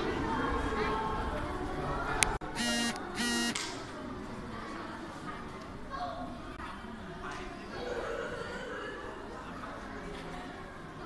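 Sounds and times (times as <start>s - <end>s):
buzzy electronic beeps: 2.6s - 3.6s.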